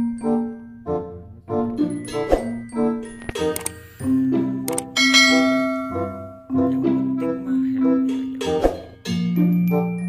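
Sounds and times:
bell-like chiming music: 0:01.8 - 0:07.4.

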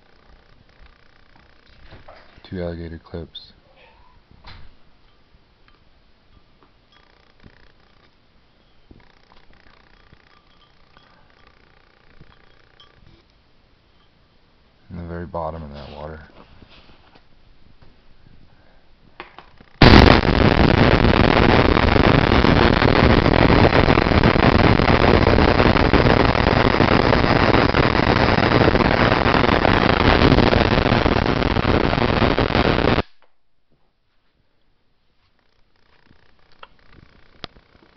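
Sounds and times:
spark gap crackling buzz: 0:08.9 - 0:13.3, 0:19.5 - 0:33.2, 0:35.6 - 0:37.9.

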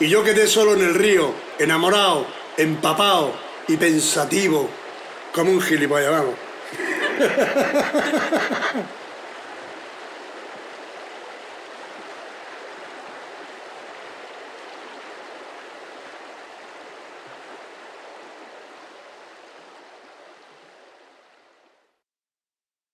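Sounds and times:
river water rushing: 0:00.0 - 0:22.0.

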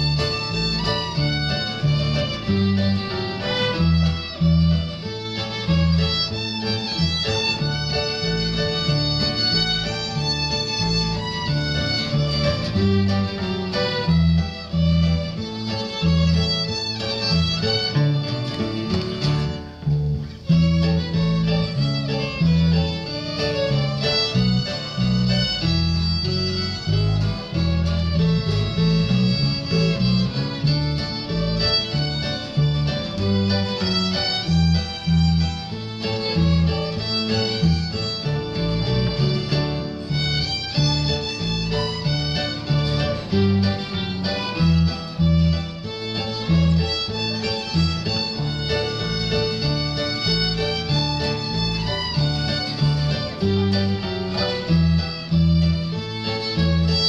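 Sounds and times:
acoustic guitar accompaniment: 0:00.0 - 0:57.0
fiddles playing a tune: 0:00.0 - 0:57.0.

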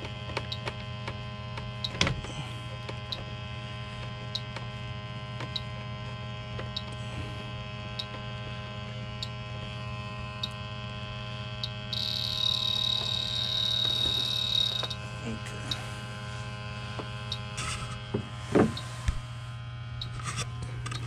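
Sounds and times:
leak detector humming: 0:00.0 - 0:21.0
continuous high tone: 0:10.3 - 0:18.0.

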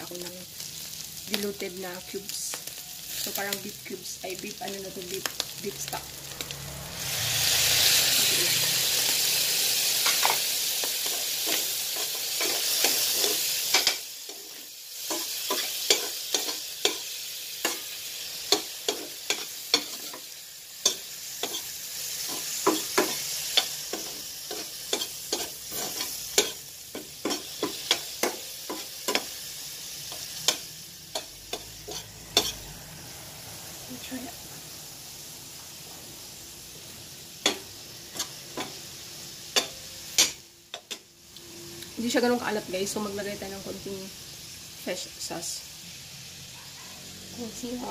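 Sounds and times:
meat sizzling: 0:00.0 - 0:47.9.

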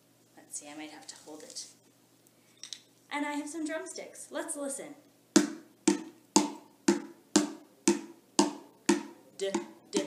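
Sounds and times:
hand drum struck with drumsticks: 0:05.4 - 0:10.0.

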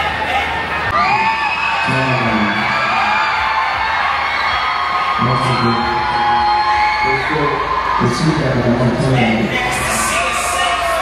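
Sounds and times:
crowd shouting and whooping: 0:00.0 - 0:11.0.

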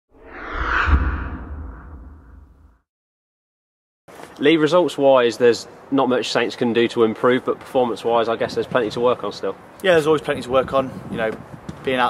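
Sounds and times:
whoosh: 0:00.1 - 0:02.8
deep rumble: 0:00.2 - 0:02.8.

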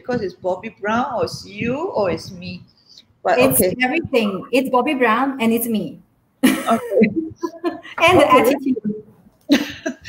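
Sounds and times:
woman speaking: 0:03.2 - 0:06.0, 0:07.9 - 0:09.0
woman laughing: 0:06.4 - 0:08.7, 0:09.5 - 0:10.0.

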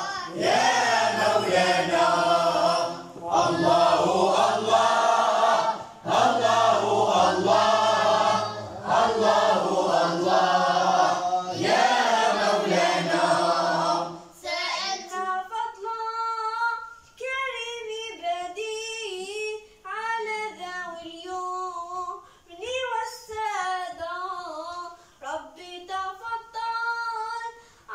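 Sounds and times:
boys singing in unison: 0:00.0 - 0:17.6.

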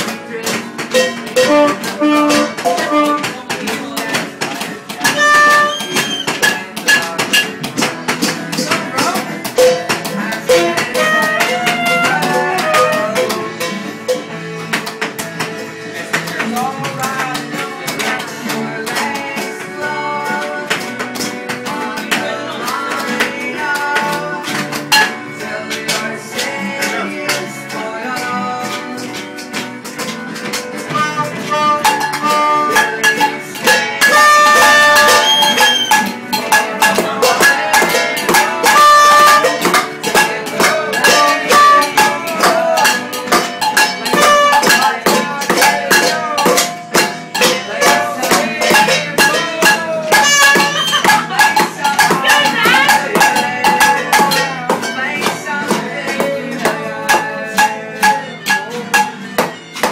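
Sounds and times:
acoustic guitars strummed: 0:00.0 - 0:59.9
saxophone melody: 0:01.4 - 0:03.4, 0:05.0 - 0:06.4, 0:10.5 - 0:13.4, 0:30.9 - 0:33.3, 0:34.0 - 0:36.2, 0:38.6 - 0:39.6, 0:41.0 - 0:42.1, 0:44.1 - 0:44.7, 0:50.1 - 0:51.5.

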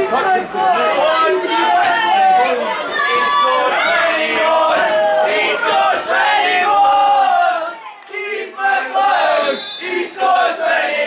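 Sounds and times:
group chanting football song: 0:00.4 - 0:11.0.

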